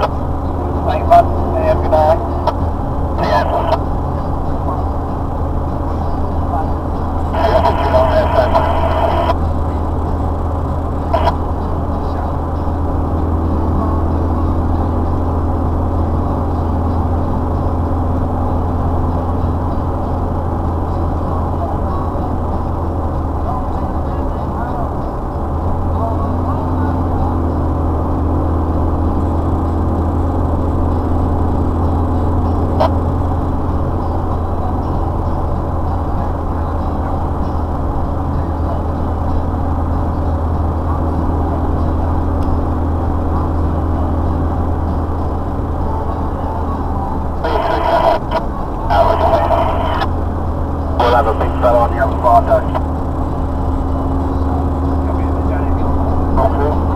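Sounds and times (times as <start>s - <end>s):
vehicle engine and tyre drone: 0.0s - 56.9s.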